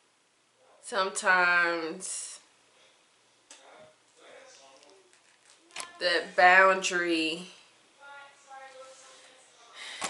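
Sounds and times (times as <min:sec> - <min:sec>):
quiet high-pitched voice: 0:05.6 - 0:06.5
faint breathing: 0:08.8 - 0:10.0.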